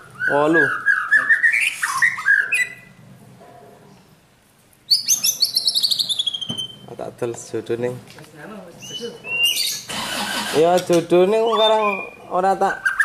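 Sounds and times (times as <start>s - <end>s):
birds chirping: 0.0s - 4.2s, 4.8s - 13.0s.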